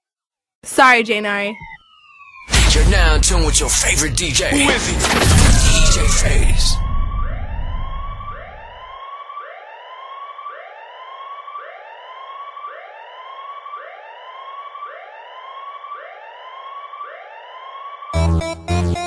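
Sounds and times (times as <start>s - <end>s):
siren whoop sound effect: 1.6s - 18.2s.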